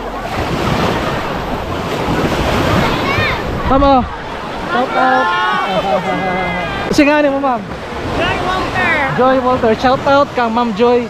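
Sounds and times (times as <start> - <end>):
waves breaking on sandy shore: 0.0 - 11.0
wind buffeting microphone: 0.0 - 11.0.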